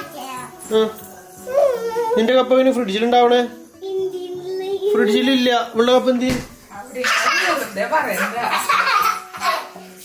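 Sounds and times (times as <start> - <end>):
girl singing: 0.0 - 0.7, 1.3 - 2.2, 3.8 - 4.9.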